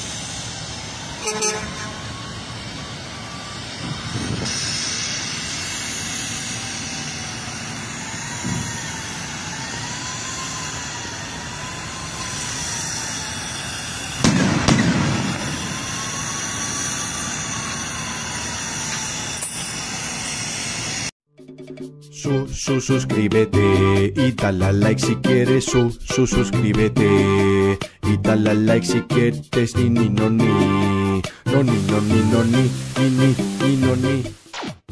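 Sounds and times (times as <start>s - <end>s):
hydraulic platform machinery noise: 0.0s - 21.1s
loud metallic bang: 14.2s - 16.0s.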